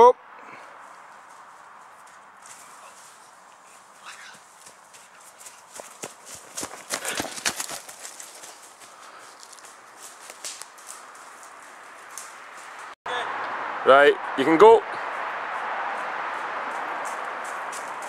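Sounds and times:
running footsteps through leaves: 0:00.8 - 0:13.0, 0:15.5 - 0:18.0.

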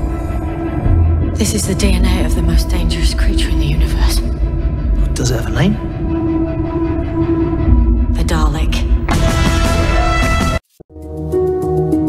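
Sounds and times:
soundtrack drone: 0:00.0 - 0:10.5.

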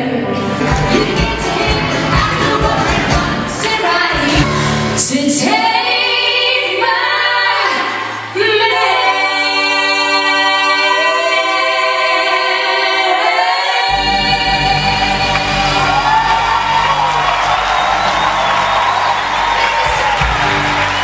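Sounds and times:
women singing in harmony: 0:00.0 - 0:17.4
audience cheering and whooping: 0:14.9 - 0:21.0.

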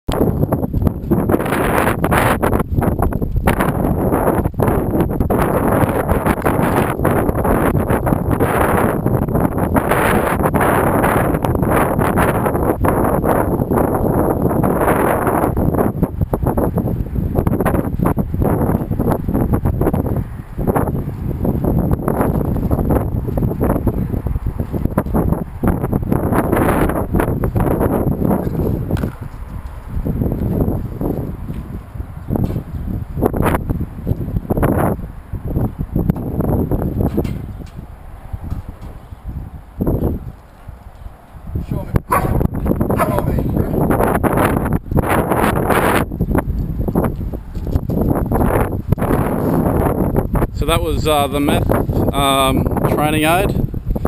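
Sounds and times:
wind buffeting microphone: 0:00.1 - 0:54.0.

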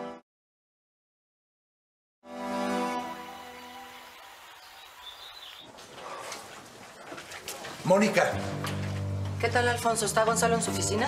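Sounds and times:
music chord: 0:02.3 - 0:04.7
fountain water falling: 0:03.1 - 0:05.6.

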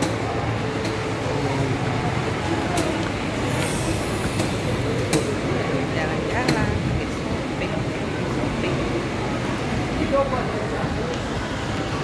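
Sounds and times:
shopping mall background noise: 0:00.0 - 0:12.0.

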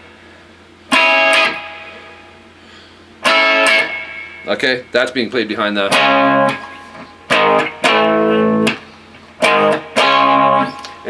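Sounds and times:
electric guitar strumming a chord: 0:00.9 - 0:02.4, 0:03.2 - 0:04.9, 0:05.8 - 0:11.0.

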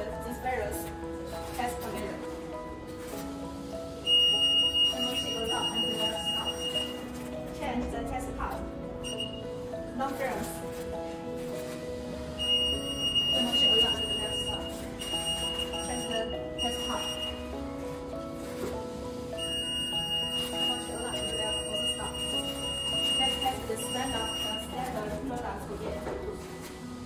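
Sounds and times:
background music: 0:00.0 - 0:27.0
high-pitched alarm beep: 0:04.0 - 0:07.1, 0:09.0 - 0:09.5, 0:12.4 - 0:17.5, 0:19.4 - 0:24.9.

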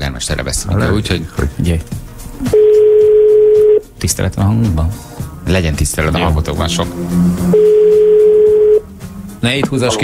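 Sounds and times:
telephone ringback beep: 0:02.5 - 0:03.8, 0:07.5 - 0:08.8.

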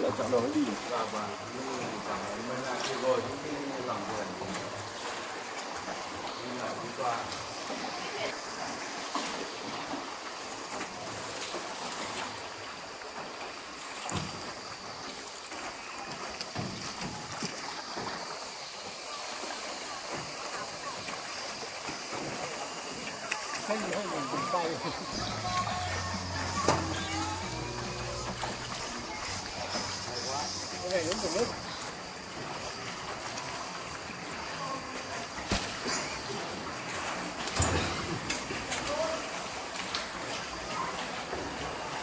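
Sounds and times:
water sloshing around rowboat: 0:00.0 - 0:42.0
indistinct voices: 0:23.1 - 0:32.0.

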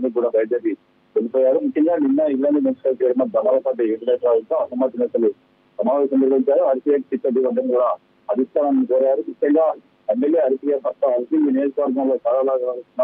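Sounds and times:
man speaking over telephone: 0:00.0 - 0:13.0.

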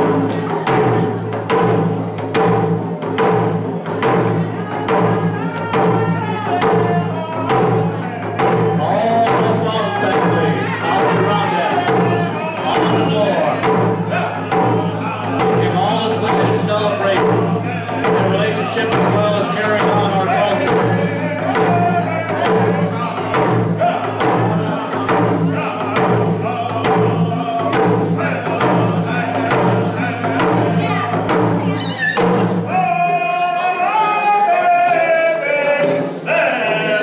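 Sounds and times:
frame drums beating: 0:00.0 - 0:37.0
men singing together: 0:04.2 - 0:37.0.

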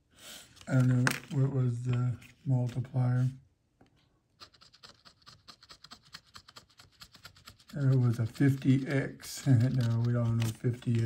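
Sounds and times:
metal tool scraping a ticket: 0:04.4 - 0:11.0.

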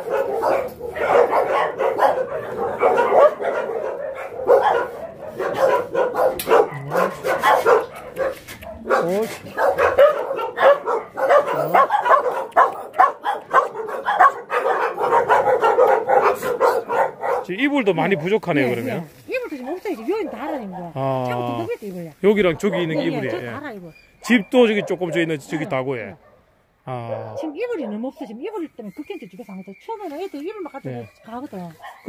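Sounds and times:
many dogs barking: 0:00.0 - 0:19.1, 0:19.7 - 0:21.8, 0:22.4 - 0:23.7, 0:24.3 - 0:28.6, 0:30.5 - 0:32.0.

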